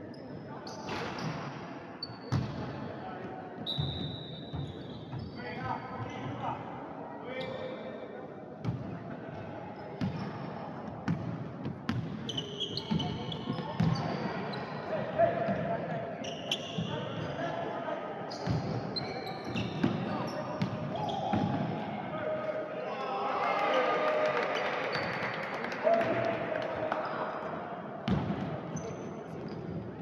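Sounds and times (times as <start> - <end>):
voices in a hall: 0.0 - 30.0
sneaker squeaks: 0.1 - 2.8, 3.6 - 6.6, 7.3 - 8.0, 11.9 - 15.6, 16.2 - 17.6, 18.3 - 21.8, 24.6 - 25.3, 28.1 - 30.0.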